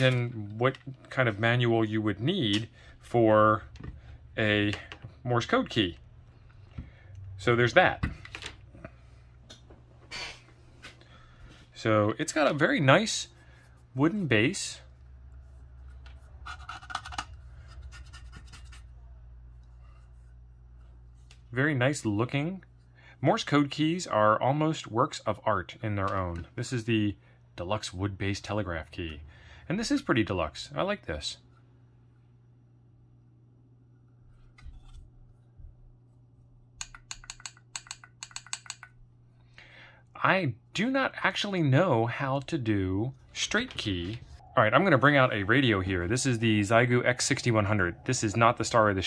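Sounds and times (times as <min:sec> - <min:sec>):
low steady hum: 0:00.0 - 0:49.0
handling scratches and clicks: 0:15.8 - 0:18.9.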